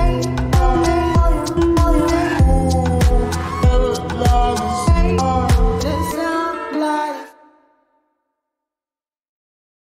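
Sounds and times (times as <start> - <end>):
breathy vocal: 0.0 - 6.2
deep house music: 0.0 - 7.3.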